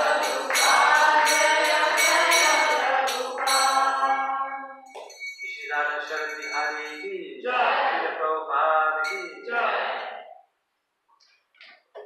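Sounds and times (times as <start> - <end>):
small brass hand cymbals ringing: 0.0 - 7.1, 9.0 - 9.5.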